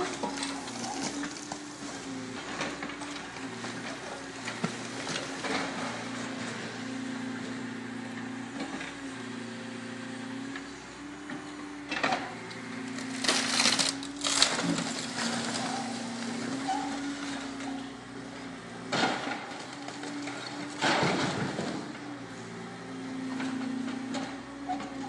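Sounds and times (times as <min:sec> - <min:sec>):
masonry crunching: 0:00.0 - 0:06.6, 0:11.8 - 0:22.2
excavator engine and hydraulics hum: 0:00.0 - 0:25.0.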